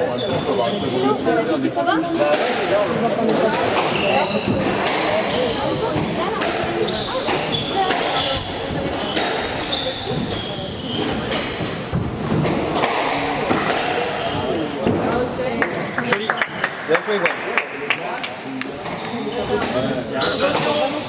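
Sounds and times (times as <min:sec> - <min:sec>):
shoes squeaking on wooden floor: 0:03.8 - 0:12.6, 0:13.8 - 0:14.8.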